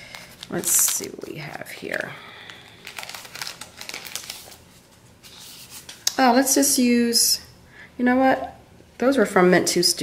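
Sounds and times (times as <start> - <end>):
plastic sleeves crinkling: 0.0 - 6.1.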